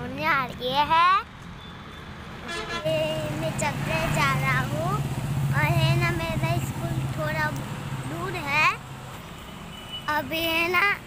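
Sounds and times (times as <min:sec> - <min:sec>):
street traffic noise: 0:00.0 - 0:11.0
vehicle horn toot: 0:02.5 - 0:02.9.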